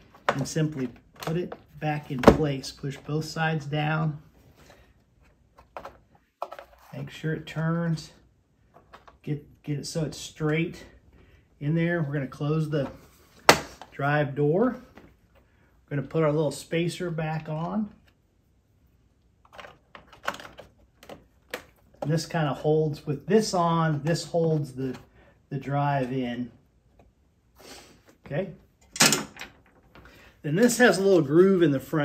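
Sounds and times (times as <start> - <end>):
plastic vacuum parts clicking: 0.1 - 1.6, 19.4 - 22.1
plastic parts clicking and knocking: 5.6 - 6.8, 19.4 - 22.2, 28.8 - 30.1.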